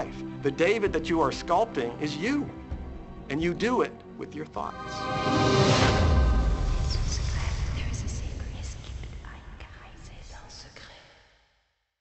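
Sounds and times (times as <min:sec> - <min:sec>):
low background music: 0:00.0 - 0:10.8
soft whispering voices: 0:06.9 - 0:11.2.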